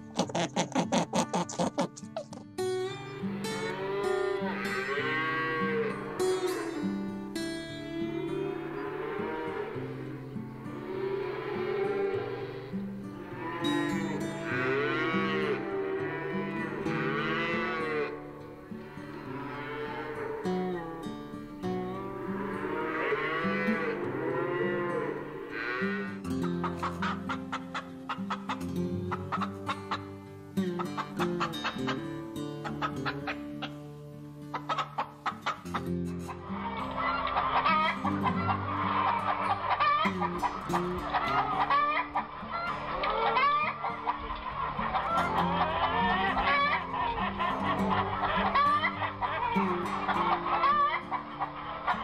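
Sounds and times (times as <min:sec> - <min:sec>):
hens clucking: 0:00.0 - 0:02.6, 0:07.8 - 0:20.8, 0:21.7 - 0:52.0
light guitar music: 0:00.0 - 0:52.0
cattle mooing: 0:03.2 - 0:26.2, 0:42.8 - 0:51.6.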